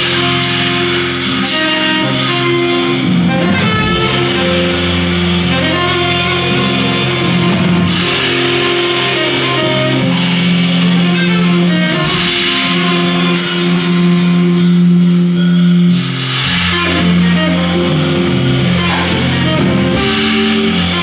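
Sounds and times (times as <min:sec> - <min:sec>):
cymbals: 0:00.0 - 0:21.0
low keyboard chords: 0:00.0 - 0:21.0.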